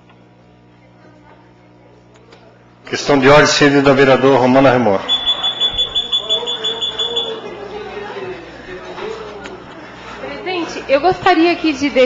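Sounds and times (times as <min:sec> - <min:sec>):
faint voices: 0:00.4 - 0:12.0
rapid high-pitched electronic beeping: 0:05.1 - 0:07.4.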